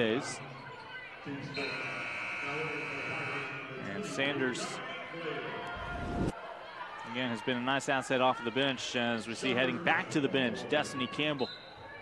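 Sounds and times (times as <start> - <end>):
arena horn long buzz: 1.6 - 3.8.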